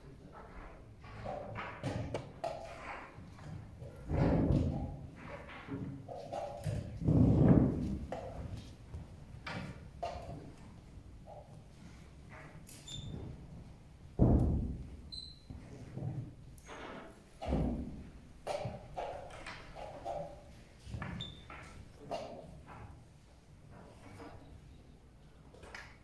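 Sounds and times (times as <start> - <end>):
dull thumps and knocks: 14.2 - 15.0.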